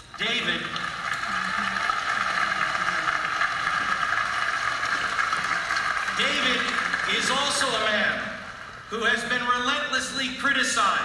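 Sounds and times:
crowd applauding over loudspeakers: 0.0 - 8.9.

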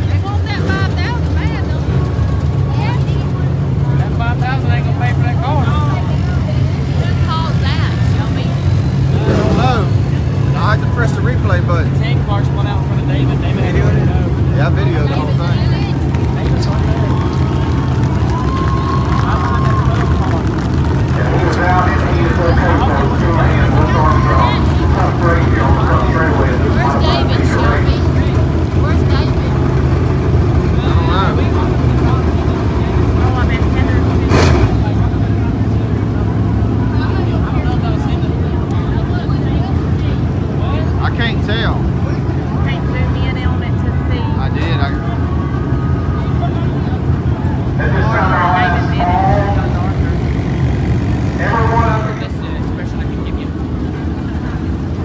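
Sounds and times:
indistinct crowd chatter: 0.0 - 55.0
vehicle engines idling: 0.0 - 55.0.

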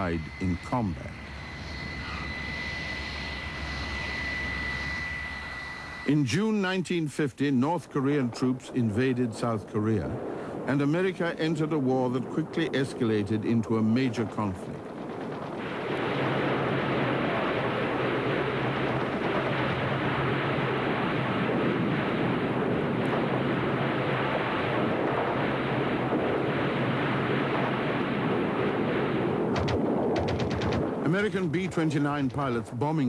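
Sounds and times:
rockets firing roar: 8.2 - 32.8
machine-gun shots: 29.5 - 31.0.

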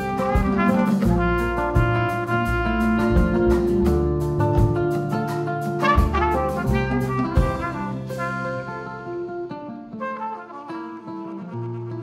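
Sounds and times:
trumpet melody: 0.0 - 4.1, 5.7 - 12.0
drum kit beat: 0.0 - 9.2
bass guitar: 0.0 - 9.5
acoustic guitar: 0.0 - 12.0.

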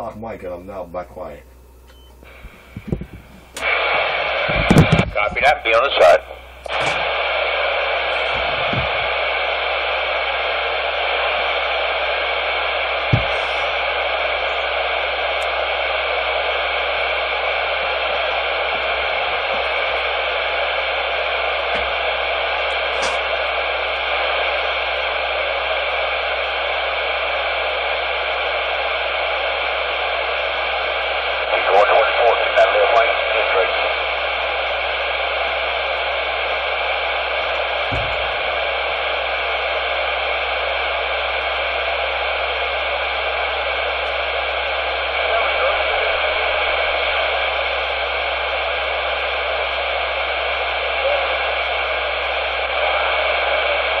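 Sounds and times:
radio static hiss: 0.0 - 54.0
garbled radio signal burst: 2.2 - 54.0.

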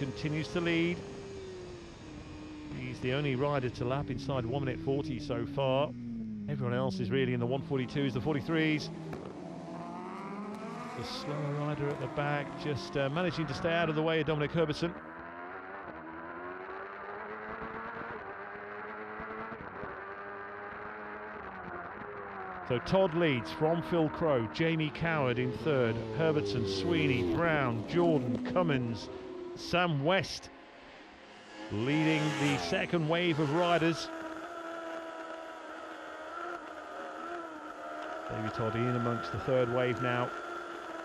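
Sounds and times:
racing motorcycle engine: 0.0 - 41.0.

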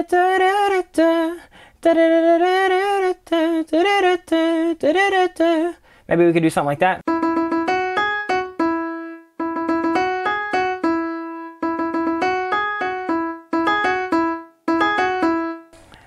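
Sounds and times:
piano melody of short notes: 7.1 - 15.8.

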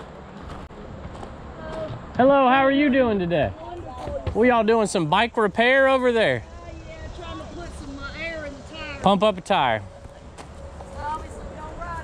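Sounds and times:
faint distant voices: 1.5 - 12.0.

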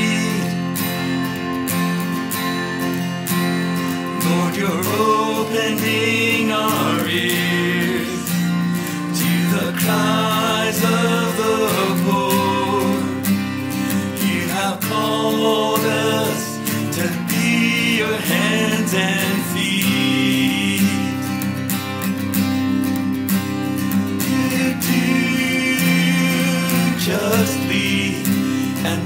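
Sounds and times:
person singing: 0.0 - 1.2, 3.9 - 21.5, 24.2 - 29.0
acoustic guitar: 0.0 - 29.0.

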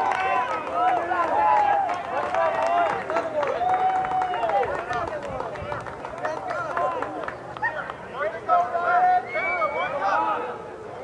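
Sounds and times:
players and spectators shouting: 0.0 - 4.8, 6.6 - 11.0.

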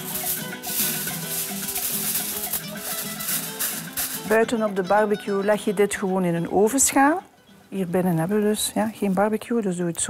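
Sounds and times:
aluminium foil crinkling: 0.0 - 4.8
background music with held notes: 0.0 - 8.8.

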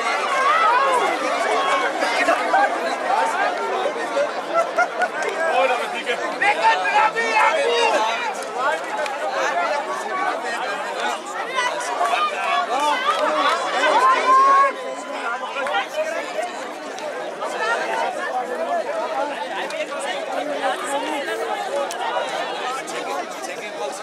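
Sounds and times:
loud drawn-out shout: 0.0 - 4.5, 9.3 - 16.2
crowd talking and calling out: 0.0 - 24.0.

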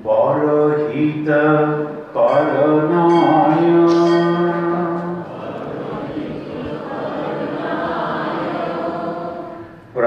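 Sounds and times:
man chanting a long note: 0.2 - 5.2.

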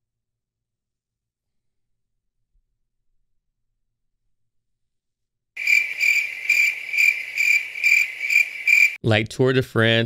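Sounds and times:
cricket chirping: 5.6 - 9.0.

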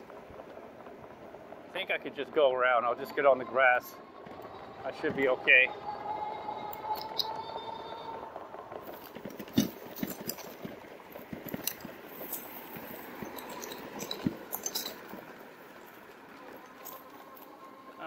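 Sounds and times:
bike rolling over bumpy grass: 0.0 - 18.0
faint steady whine: 0.0 - 18.0
bike frame clinks and rattles: 2.8 - 18.0.

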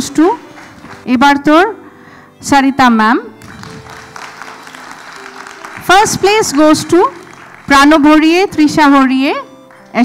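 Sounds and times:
faint background music: 0.0 - 10.0
group applause: 0.3 - 1.0, 3.4 - 8.2.

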